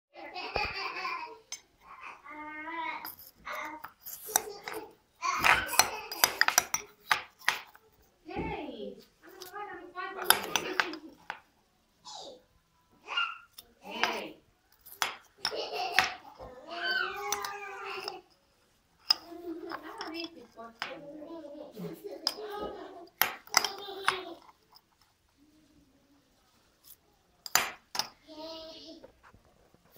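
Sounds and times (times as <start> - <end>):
metal spoon clinking glass jar: 3.0 - 4.8, 5.4 - 7.8, 19.0 - 21.0.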